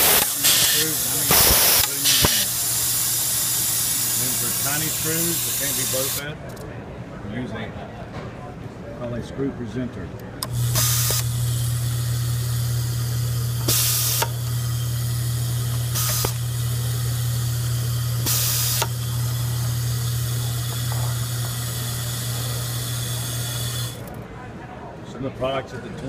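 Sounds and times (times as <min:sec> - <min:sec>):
compressed air hisses: 0:00.0 - 0:06.2, 0:13.6 - 0:14.5, 0:15.6 - 0:16.6, 0:17.5 - 0:19.5
screw feeder humming: 0:00.0 - 0:06.2, 0:10.4 - 0:24.3.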